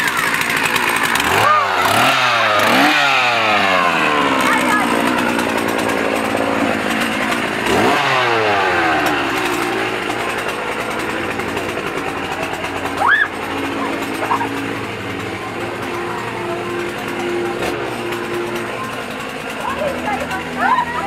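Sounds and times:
dense noisy din: 0.0 - 21.0
small engine revving: 0.0 - 21.0.

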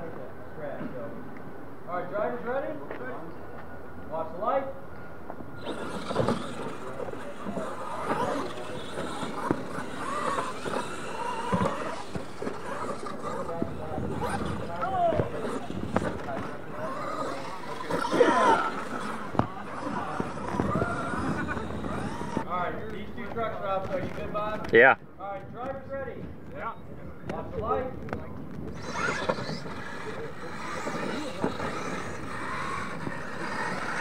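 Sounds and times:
rc trucks running on dirt: 5.5 - 24.8, 27.3 - 34.0
people's voices: 5.6 - 34.0.

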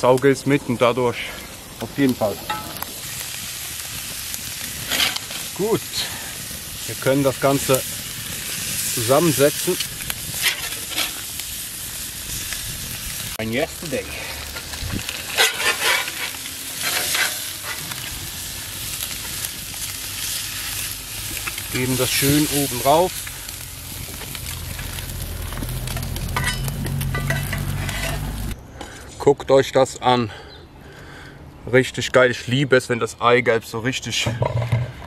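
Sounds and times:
meat and vegetables sizzling: 0.0 - 28.6
metal utensil scraping griddle: 4.8 - 11.4, 14.1 - 28.5
metal spatula scraping plate: 15.3 - 17.8.

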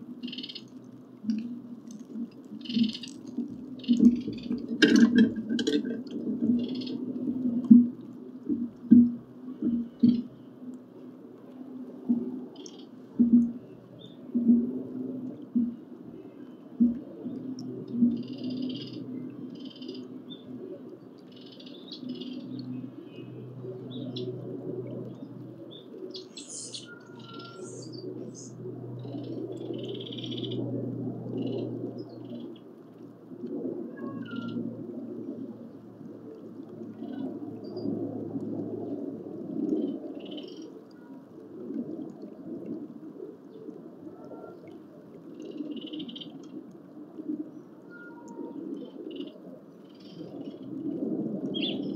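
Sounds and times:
low background hum: 0.0 - 51.9
birds chirping: 0.2 - 0.8, 2.6 - 4.6, 25.2 - 30.6.

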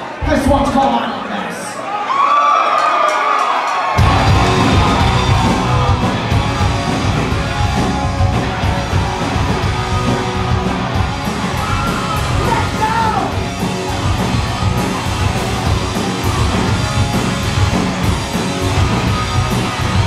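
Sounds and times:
punk rock band playing live: 4.0 - 20.0.

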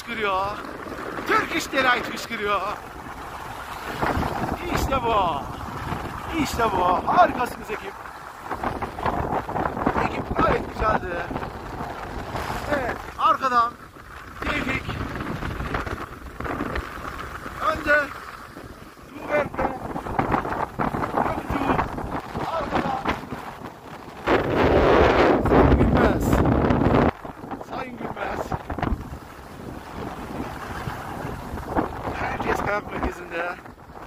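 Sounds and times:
skis scraping over snow: 0.0 - 34.0
wind buffeting microphone: 0.0 - 34.0.

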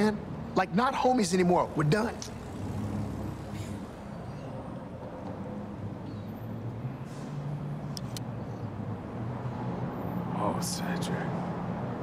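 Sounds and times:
distant traffic rumble: 0.0 - 12.0.

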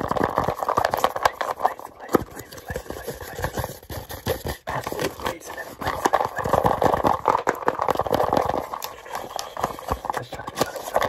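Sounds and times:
fingertips tapping on cardboard box: 0.0 - 11.0.

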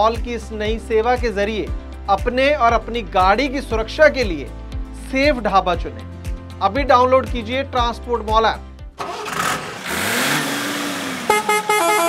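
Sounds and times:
short horn toots: 11.2 - 12.0.

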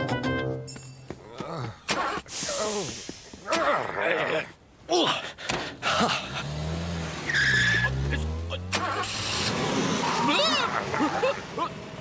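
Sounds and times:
cartoon car engine revving: 6.1 - 12.0
tyre screech: 7.2 - 10.9
man grunting and exclaiming: 10.2 - 11.8.

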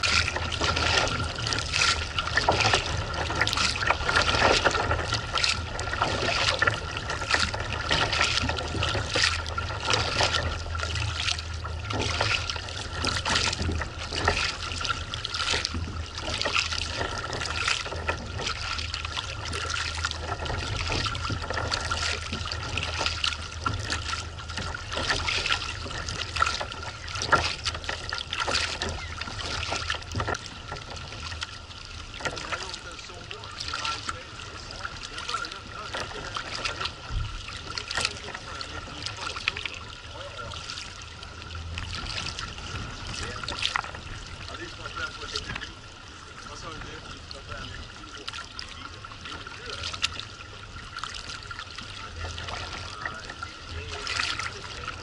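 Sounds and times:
kayak paddle splashing: 0.0 - 55.0
water lapping against hull: 0.0 - 55.0
wind rumble on microphone: 32.3 - 55.0.

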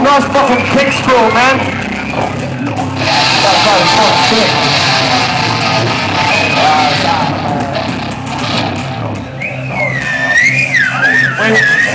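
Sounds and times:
live rock band playing: 0.0 - 10.6
high squealing feedback tone: 0.2 - 11.9.

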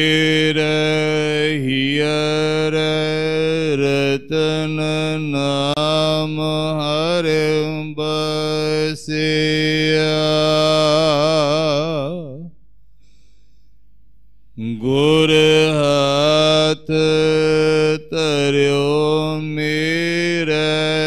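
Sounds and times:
man chanting scripture: 0.0 - 12.5, 14.6 - 21.0.

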